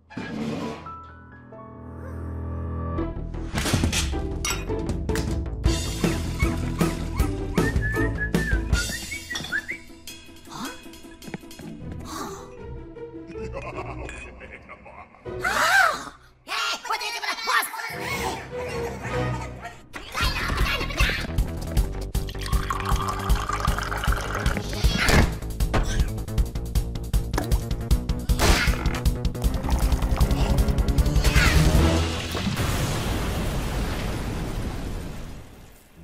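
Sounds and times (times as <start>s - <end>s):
cartoon music with steady beat: 4.2s - 13.9s, 21.3s - 32.0s
high whistled melody: 7.5s - 10.0s
liquid pouring into glass flask: 22.3s - 24.7s.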